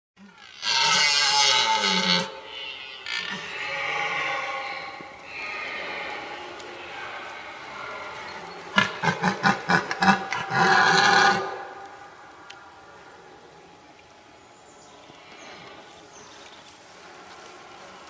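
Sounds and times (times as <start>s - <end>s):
deer stag roaring: 0.3s - 11.8s.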